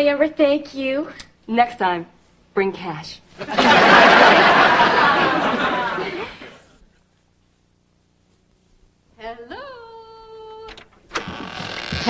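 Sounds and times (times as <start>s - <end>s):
woman singing a call: 9.2s - 10.9s.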